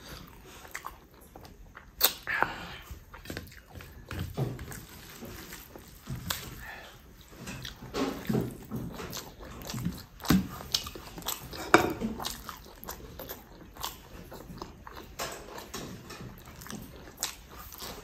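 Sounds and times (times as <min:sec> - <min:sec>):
person chewing food: 0:00.0 - 0:18.0.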